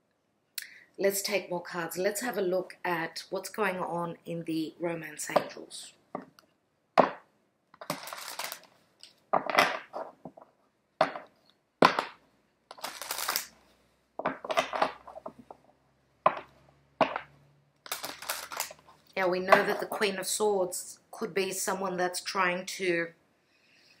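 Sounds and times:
cards being shuffled: 7.8s - 10.5s, 12.0s - 13.5s, 17.9s - 19.9s.

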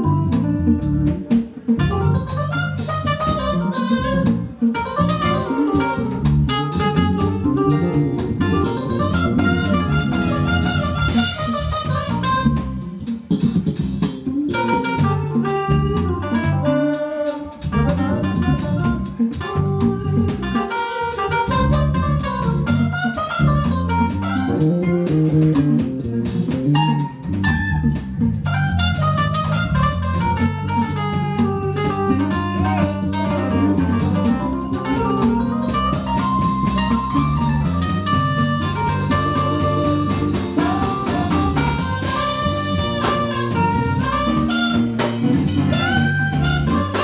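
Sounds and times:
melodic lead line: 0.0s - 13.0s, 14.3s - 47.0s
live band playing r and b: 0.0s - 47.0s.

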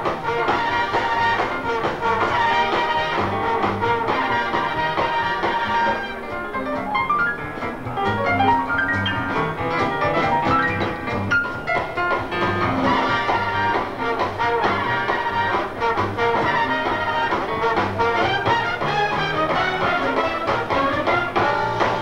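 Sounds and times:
swing big band playing: 0.0s - 22.0s.

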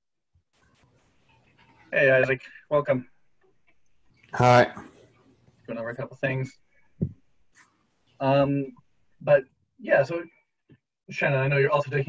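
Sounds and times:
faint room noise: 0.4s - 12.0s.

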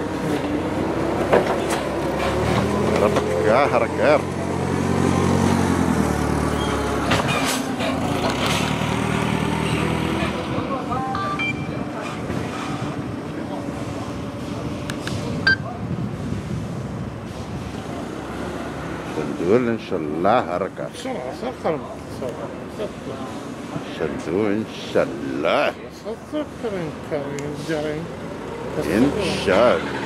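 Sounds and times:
forklift engine running: 0.0s - 19.1s.

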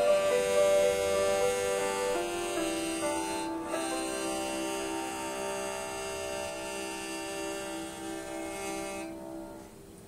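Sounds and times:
violin long held note: 0.0s - 9.8s.

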